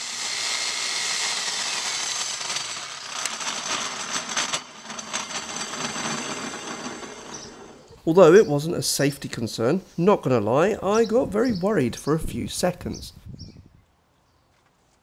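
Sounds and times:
mitre saw whirring: 0:00.0 - 0:08.0.

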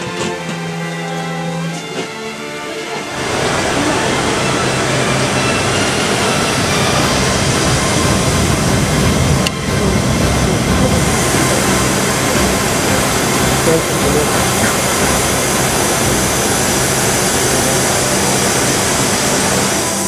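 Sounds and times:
background music: 0:00.0 - 0:20.0
low hum: 0:03.1 - 0:20.0.

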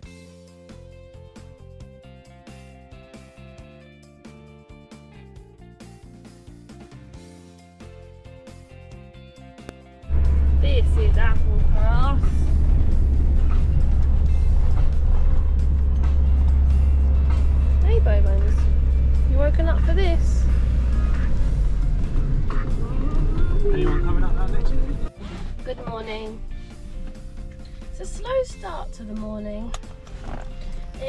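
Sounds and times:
engine and road noise inside cab: 0:10.1 - 0:31.0.

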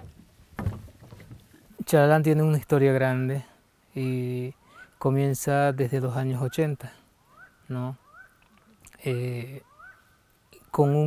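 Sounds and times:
boot footsteps on wooden planks: 0:00.0 - 0:01.6.

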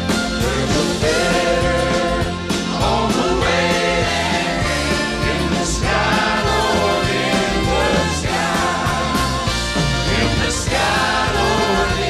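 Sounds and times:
acoustic guitars and bass: 0:00.0 - 0:12.0
man singing lead: 0:00.4 - 0:09.4
voices singing along: 0:00.4 - 0:12.0.

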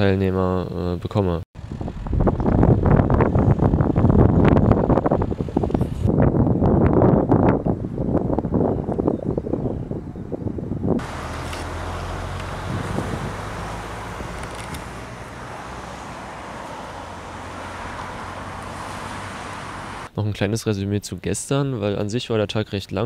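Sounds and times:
wind buffeting microphone: 0:01.6 - 0:20.1
road traffic hiss: 0:11.0 - 0:20.1.

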